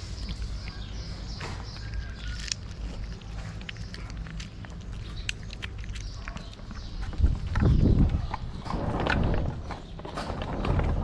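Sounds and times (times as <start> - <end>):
cats chewing wet food: 0.0 - 8.6.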